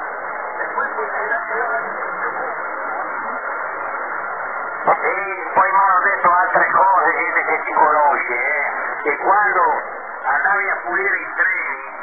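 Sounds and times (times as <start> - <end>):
radio band hiss: 0.0 - 12.0
voice over radio: 4.8 - 12.0.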